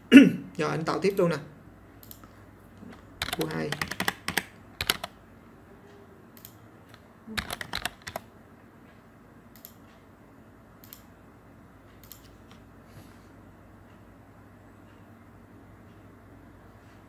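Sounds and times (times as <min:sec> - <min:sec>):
typing on computer keyboard: 0:02.9 - 0:05.2, 0:06.4 - 0:08.3.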